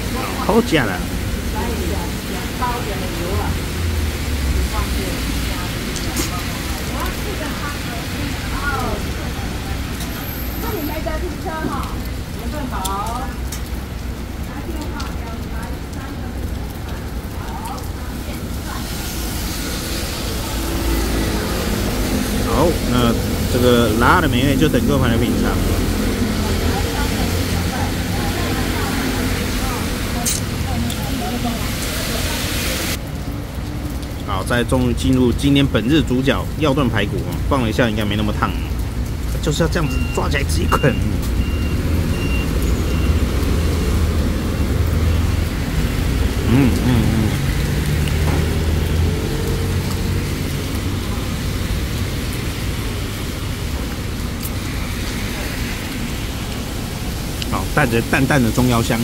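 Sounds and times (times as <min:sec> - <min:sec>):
passing road traffic: 0:00.0 - 0:36.6, 0:38.4 - 0:59.0
heavy rain hiss: 0:00.0 - 0:59.0
faint voices: 0:46.4 - 0:47.5.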